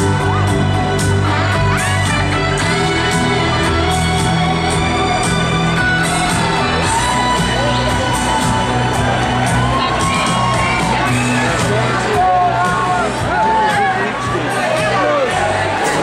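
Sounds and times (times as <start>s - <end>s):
brass and drum band playing: 0.0s - 16.0s
crowd cheering and whooping: 0.0s - 16.0s.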